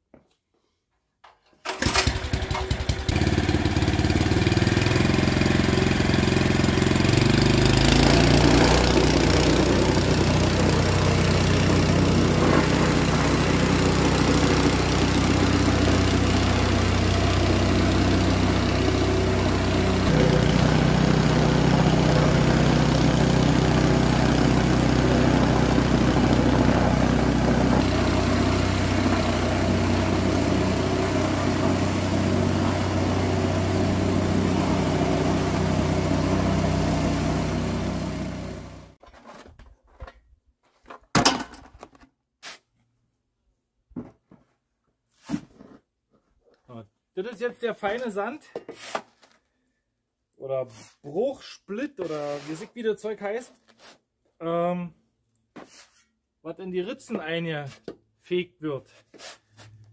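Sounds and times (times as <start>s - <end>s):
plate compactor engine running: 1.7s - 39.0s.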